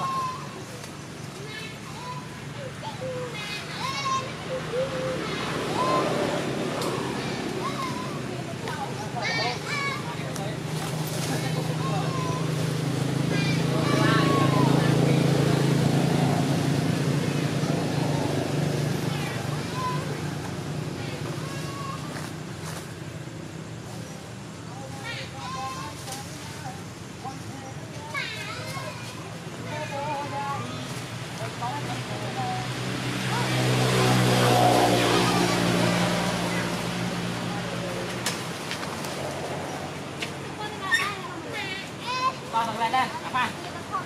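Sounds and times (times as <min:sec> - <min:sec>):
low engine-like hum: 0:00.0 - 0:44.0.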